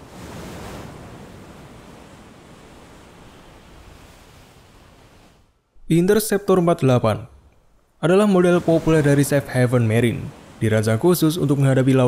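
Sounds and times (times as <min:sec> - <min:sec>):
rough sea: 0:00.0 - 0:12.0
wind: 0:00.0 - 0:12.0.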